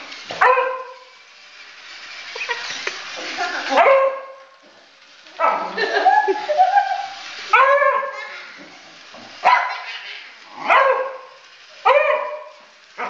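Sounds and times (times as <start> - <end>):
dog barking: 0.4 - 1.0, 3.7 - 4.4, 5.4 - 5.8, 7.5 - 8.2, 9.4 - 9.9, 10.6 - 12.6.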